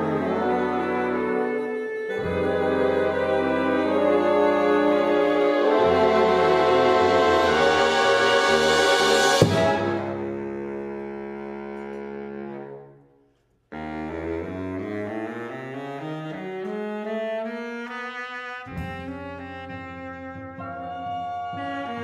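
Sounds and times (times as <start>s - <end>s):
jazz big band playing: 0.0s - 12.9s, 13.7s - 22.0s
double bass: 0.0s - 13.0s, 13.7s - 22.0s
baritone saxophone: 0.0s - 13.1s, 13.7s - 22.0s
drums: 6.6s - 10.6s.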